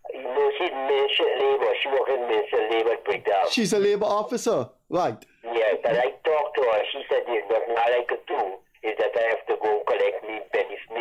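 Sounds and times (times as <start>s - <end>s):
person talking over telephone: 0.0s - 11.0s.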